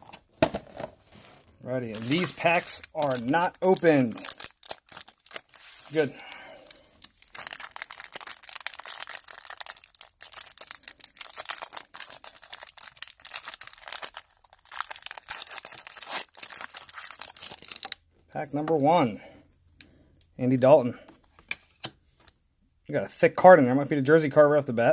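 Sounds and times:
foil wrapper crinkling: 1.9 - 18.0.

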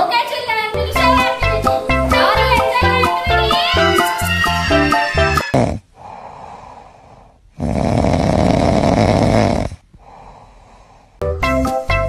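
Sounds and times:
person snoring: 5.4 - 11.2
faint breathing: 5.9 - 11.2.

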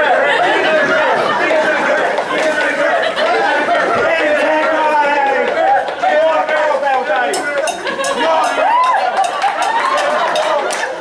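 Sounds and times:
men chanting and shouting: 0.0 - 9.2.

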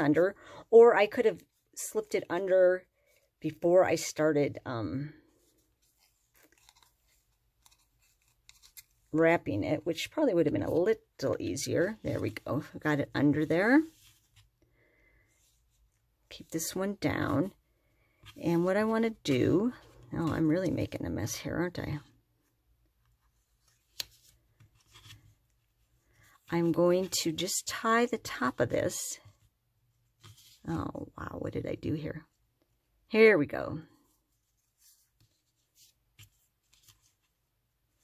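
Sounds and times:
soft rubbing of floss: 5.1 - 9.3, 11.6 - 16.6, 22.1 - 27.2, 29.2 - 30.8, 34.0 - 38.0
fingers rustling cardstock: 5.3 - 14.6, 34.2 - 38.0.

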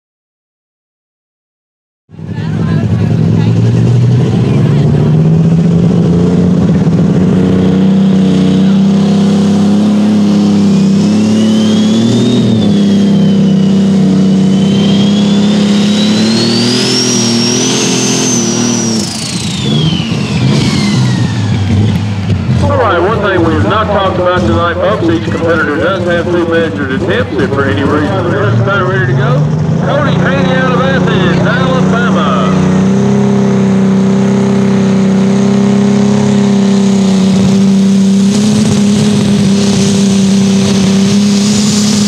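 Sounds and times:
diesel tractor engine under load: 2.1 - 42.0
high turbo whistle: 10.2 - 21.9.

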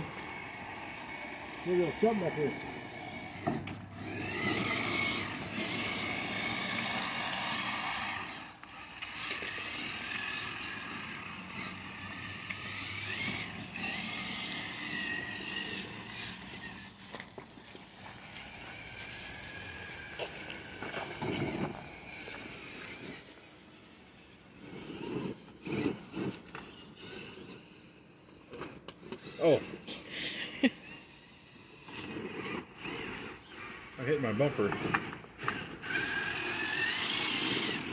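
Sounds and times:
electric motors whining: 0.0 - 37.9
toy trucks knocking and scraping on dirt: 0.0 - 37.9.

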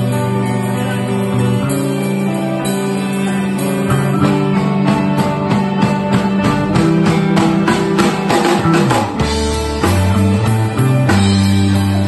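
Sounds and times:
drum kit beat: 0.0 - 12.0
rock band playing: 0.0 - 12.0.

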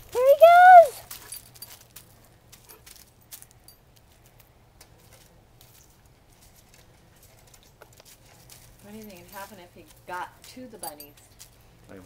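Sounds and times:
animals rustling on mulch: 0.0 - 12.0.

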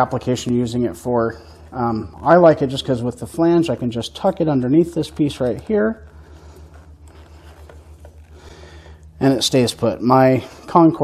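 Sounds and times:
plastic rustling and scraping: 0.0 - 10.7
steady low hum: 0.0 - 11.0.

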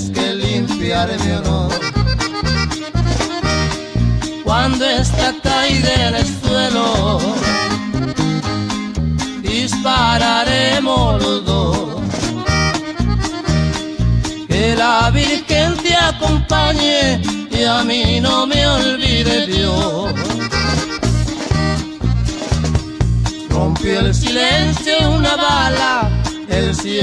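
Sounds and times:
person singing: 0.0 - 2.2, 4.4 - 7.9, 9.4 - 12.7, 14.5 - 20.7, 23.5 - 27.0
button accordion melody: 0.0 - 27.0
repeating bass line: 0.0 - 27.0.

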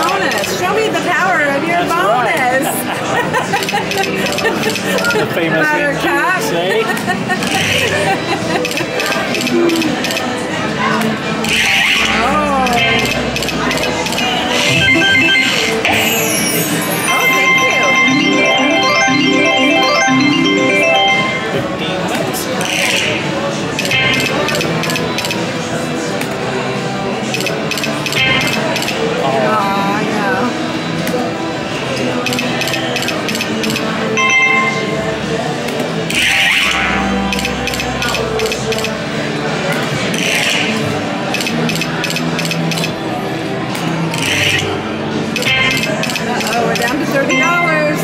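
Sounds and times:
crowd chatter: 0.0 - 48.0
electronic game music: 11.5 - 21.8, 36.1 - 38.2
bright chime: 16.8 - 21.6.

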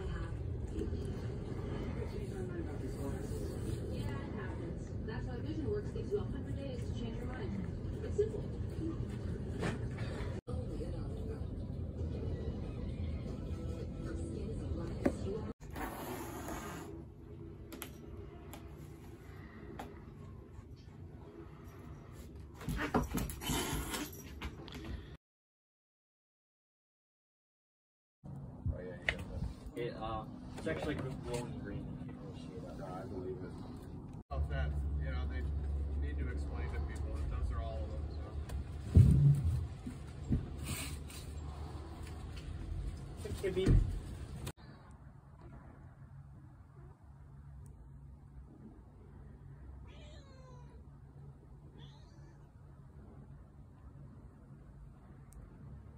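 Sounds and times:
cat meowing: 49.8 - 50.8, 51.7 - 52.5.

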